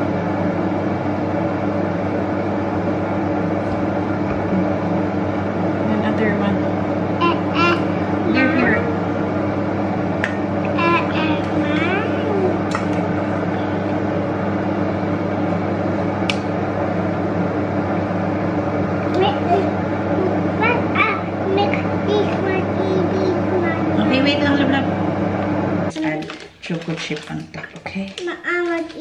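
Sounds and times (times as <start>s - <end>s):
steady electrical hum: 0.0s - 29.0s
soft speech: 7.2s - 8.9s, 10.7s - 12.7s, 19.1s - 25.0s.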